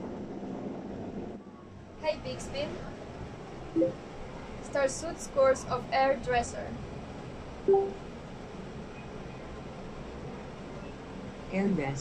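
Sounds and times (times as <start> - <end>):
short electronic beep: 3.8 - 4.0, 7.7 - 8.0.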